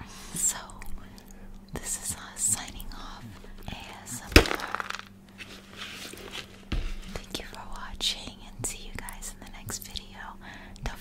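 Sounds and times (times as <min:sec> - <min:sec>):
person whispering: 0:01.8 - 0:04.4
cardboard bucket set down on table: 0:04.4 - 0:05.1.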